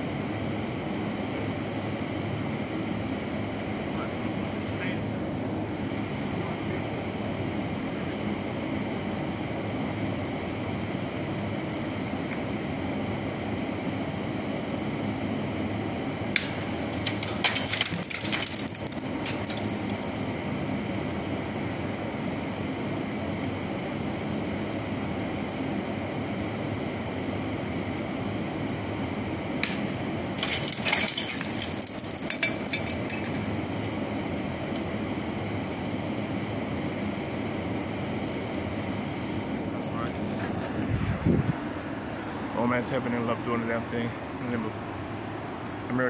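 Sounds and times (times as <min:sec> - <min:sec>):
outdoor city background noise: 0:00.0 - 0:46.0.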